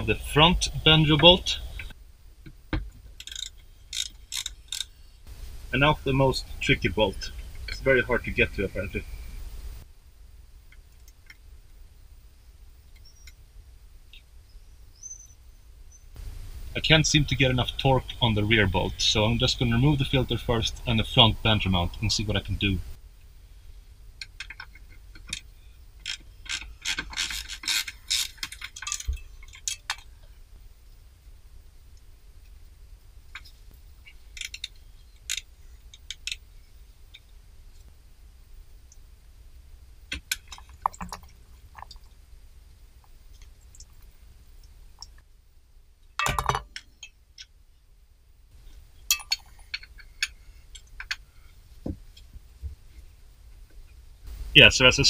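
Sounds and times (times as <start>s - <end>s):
metal tools clinking: 3.2s - 4.9s, 46.2s - 47.2s, 49.1s - 51.2s
socket ratchet clicking: 3.2s - 4.9s.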